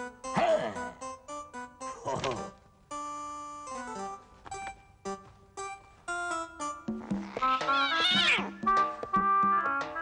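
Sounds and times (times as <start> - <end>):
cartoon background music: 0.0 - 10.0
high wavering animal cry: 7.6 - 8.5.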